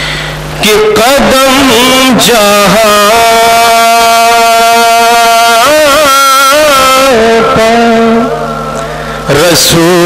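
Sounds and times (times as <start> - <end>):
man singing through a microphone: 0.6 - 10.0.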